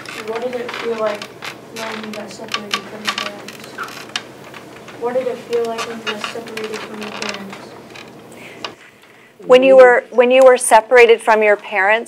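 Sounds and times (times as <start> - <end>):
faint clicks and creaks: 0.0 - 9.2
steady low hum: 0.0 - 11.4.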